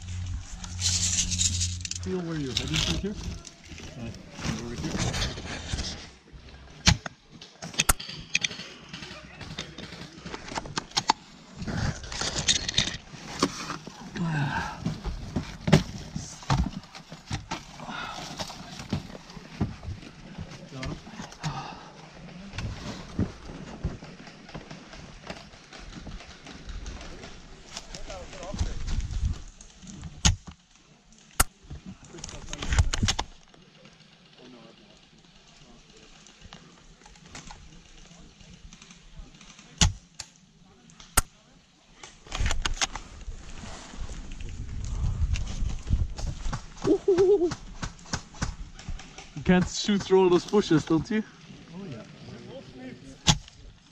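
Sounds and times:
movement noise: 0:00.0 - 0:06.7.

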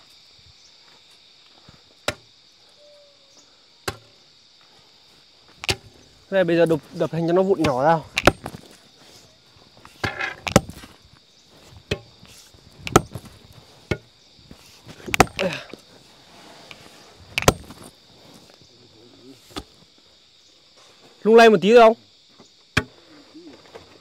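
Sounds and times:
pickaxe and crowbar striking rock: 0:02.1 - 0:02.3, 0:03.8 - 0:04.1, 0:05.6 - 0:05.9, 0:07.6 - 0:08.7, 0:09.9 - 0:10.9, 0:11.9 - 0:12.2, 0:12.8 - 0:14.1, 0:15.0 - 0:15.7, 0:17.4 - 0:17.9.

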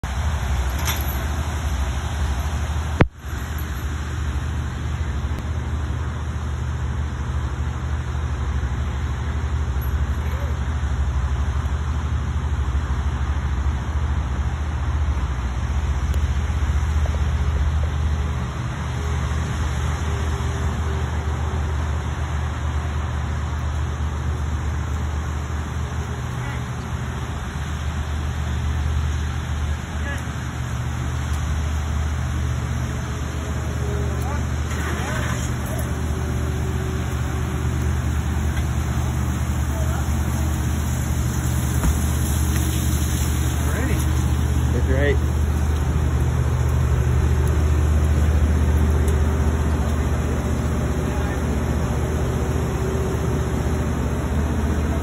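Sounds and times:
broad outdoor hiss: 0:00.0 - 0:55.0.

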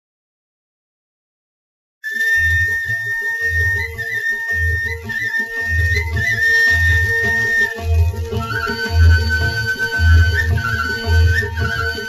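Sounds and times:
flute-like melody: 0:02.0 - 0:12.0.

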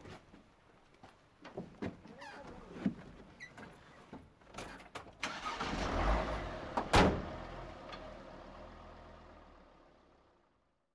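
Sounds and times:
van engine starting and running: 0:05.2 - 0:10.7.

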